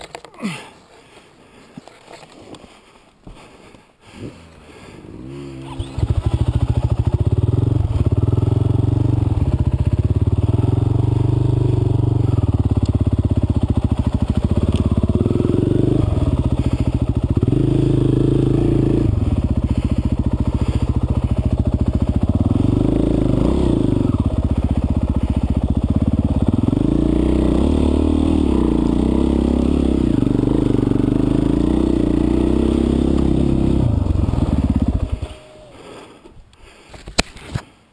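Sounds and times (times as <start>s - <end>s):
dirt bike engine revving: 4.3s - 36.1s.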